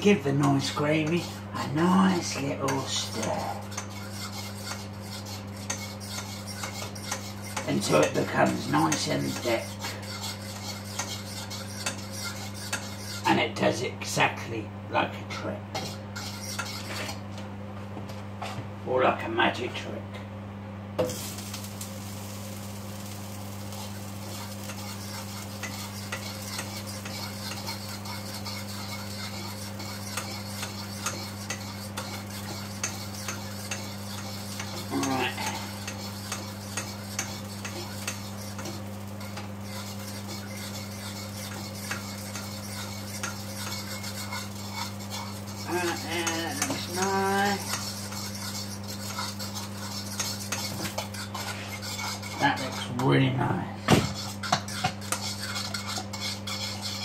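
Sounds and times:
spoon scraping saucepan: 0:00.0 - 0:13.4, 0:15.8 - 0:17.2, 0:23.7 - 0:53.2, 0:54.1 - 0:57.0
steady low hum: 0:00.0 - 0:57.0.

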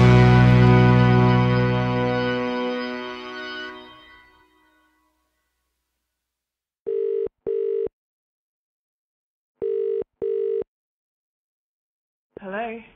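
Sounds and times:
telephone ringing tone: 0:06.9 - 0:07.9, 0:09.6 - 0:10.7.

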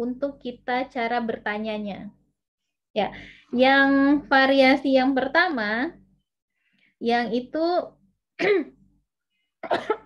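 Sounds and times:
woman clearing throat: 0:08.4 - 0:08.8, 0:09.6 - 0:10.0
woman coughing: 0:08.4 - 0:08.8, 0:09.6 - 0:10.0.

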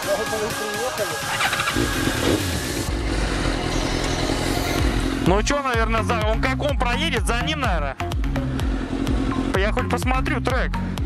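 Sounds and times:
motorcycle engine idling: 0:06.2 - 0:11.0.

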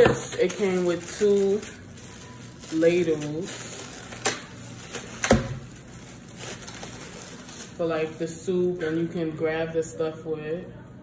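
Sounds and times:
plastic bag crinkling: 0:00.0 - 0:09.1.

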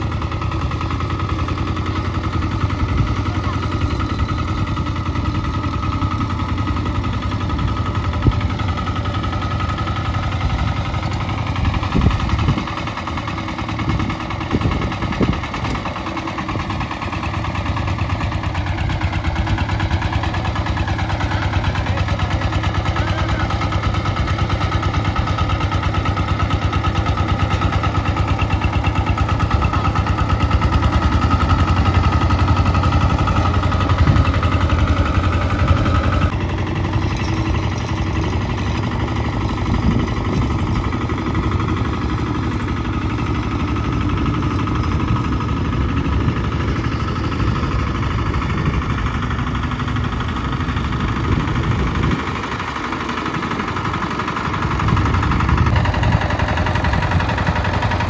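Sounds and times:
diesel tractor engine chugging: 0:00.0 - 0:58.0.

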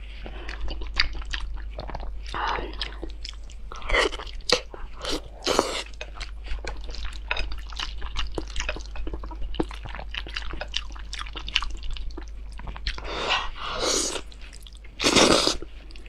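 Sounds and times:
wet chewing: 0:00.2 - 0:16.0.

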